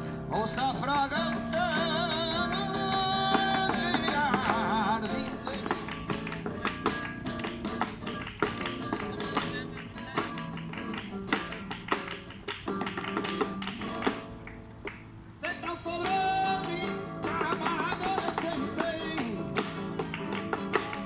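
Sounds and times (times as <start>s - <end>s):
nylon-string guitar: 0.0s - 21.0s
hand-clapping: 0.9s - 21.0s
dance footwork on wooden board: 2.5s - 15.1s, 16.6s - 21.0s.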